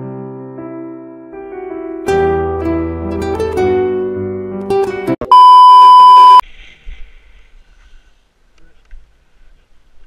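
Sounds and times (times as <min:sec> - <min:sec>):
test-tone beep: 0:05.3 - 0:06.4.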